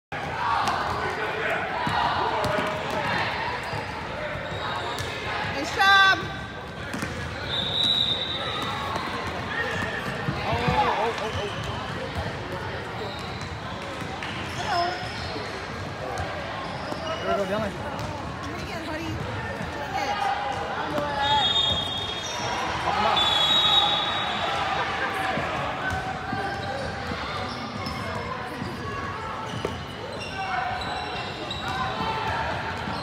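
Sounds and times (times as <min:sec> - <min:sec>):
spectators' voices and shouts: 0:00.1 - 0:33.0
basketball bouncing on court: 0:06.6 - 0:07.4, 0:17.8 - 0:19.4.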